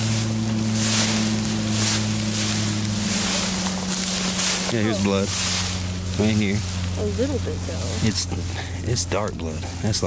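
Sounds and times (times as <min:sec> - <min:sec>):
footsteps swishing through grass: 0:00.0 - 0:08.2
steady low hum: 0:00.0 - 0:10.0.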